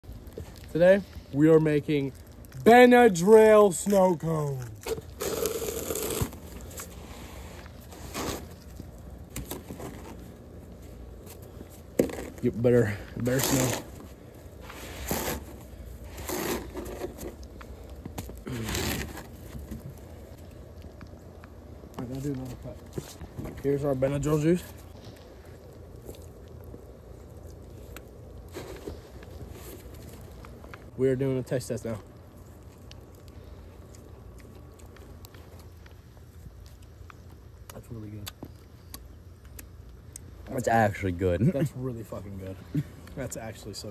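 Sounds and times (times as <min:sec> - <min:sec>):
low outdoor rumble: 0:00.0 - 0:43.9
hands packing snow into cup: 0:00.4 - 0:20.0, 0:27.9 - 0:30.9
plastic cup scraping snow: 0:04.9 - 0:08.7, 0:13.2 - 0:17.5, 0:18.5 - 0:19.5.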